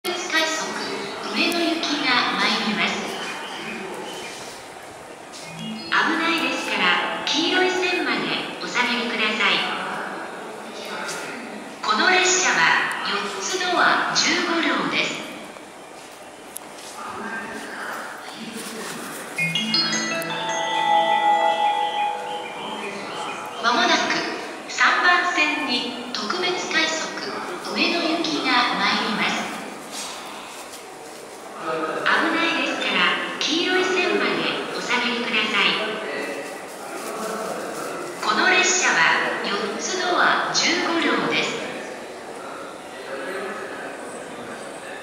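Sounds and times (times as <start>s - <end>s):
public-address announcement voice: 0.0s - 16.1s, 16.8s - 45.0s
platform hum: 5.3s - 9.2s
electronic bell-like chime melody: 5.4s - 7.8s, 19.4s - 23.3s.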